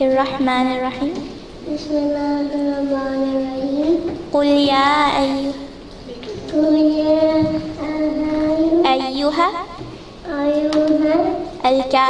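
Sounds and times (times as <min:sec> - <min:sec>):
child chanting recitation: 0:00.0 - 0:12.0.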